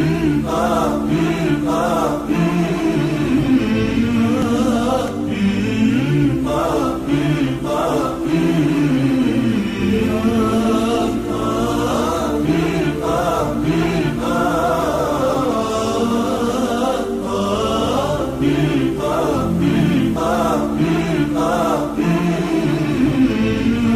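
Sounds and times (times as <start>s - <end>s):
voices chanting together: 0.0s - 23.9s.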